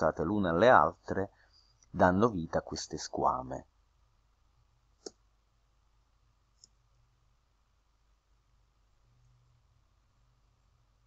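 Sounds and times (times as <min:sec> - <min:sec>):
computer mouse clicks: 0:05.0 - 0:05.2, 0:06.5 - 0:06.9.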